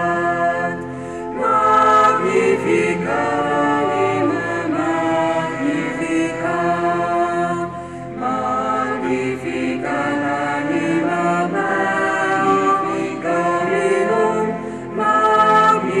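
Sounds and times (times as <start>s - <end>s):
small choir singing slowly: 0.0s - 16.0s.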